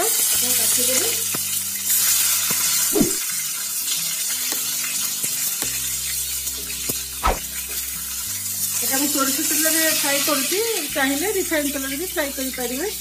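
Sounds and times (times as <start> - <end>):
eggplant sizzling in oil: 0.0 - 13.0.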